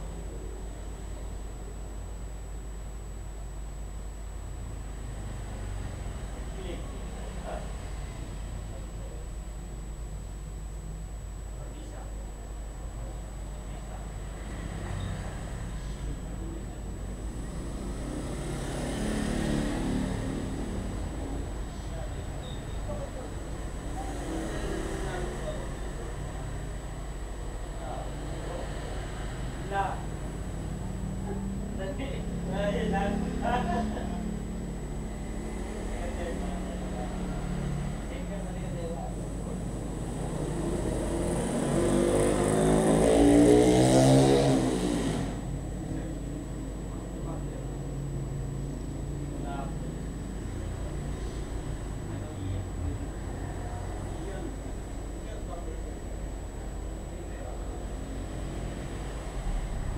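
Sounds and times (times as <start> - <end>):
low traffic rumble: 0.0 - 59.9
vehicle driving past: 17.3 - 54.8, 56.8 - 59.9
motorbike engine passing: 17.3 - 55.8.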